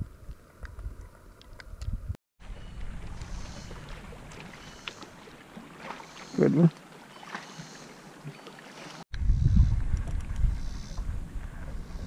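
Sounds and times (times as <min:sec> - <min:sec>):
wind buffeting microphone: 0:09.1 - 0:12.0.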